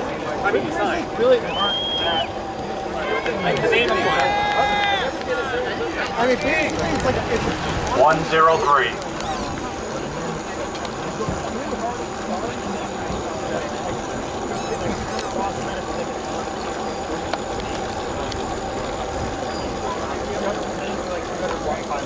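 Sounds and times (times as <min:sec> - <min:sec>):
distant indistinct voices: 0:00.0 - 0:22.0
steady background noise: 0:00.0 - 0:22.0.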